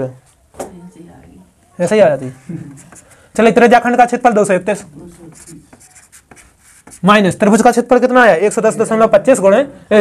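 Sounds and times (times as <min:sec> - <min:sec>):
marker scratching on whiteboard: 0:02.3 - 0:07.8.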